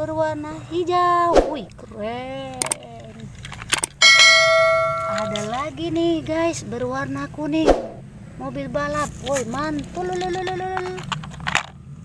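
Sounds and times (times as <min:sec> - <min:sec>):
bell ding: 0:04.0 - 0:05.6.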